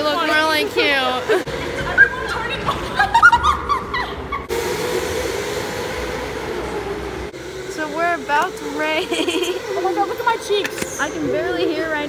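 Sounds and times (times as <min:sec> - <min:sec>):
go-karts humming with whine: 0:00.0 - 0:12.0
people laughing: 0:00.7 - 0:04.5, 0:09.0 - 0:09.9.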